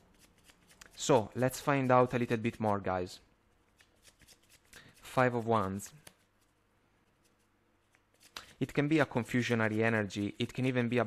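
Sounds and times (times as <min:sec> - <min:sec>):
cards rustling and ticking: 0:00.0 - 0:02.9, 0:03.7 - 0:11.0.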